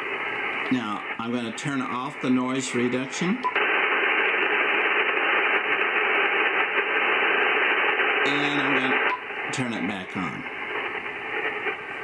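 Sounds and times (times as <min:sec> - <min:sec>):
radio band noise hiss: 0:00.0 - 0:12.0.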